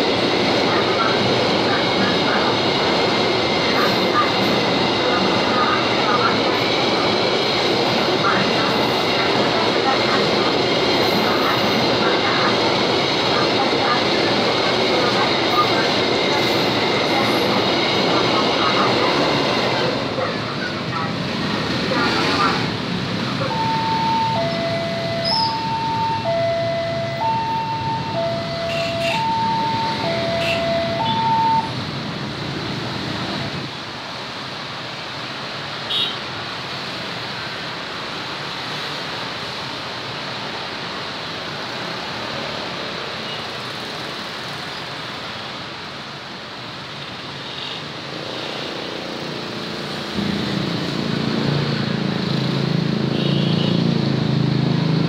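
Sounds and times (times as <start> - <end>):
motorcycle and car traffic: 14.7 - 55.0
level crossing two-tone alarm: 23.4 - 31.8.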